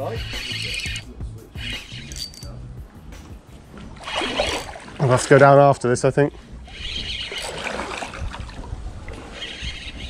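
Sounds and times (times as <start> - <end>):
music with sustained low notes: 0.0 - 9.1.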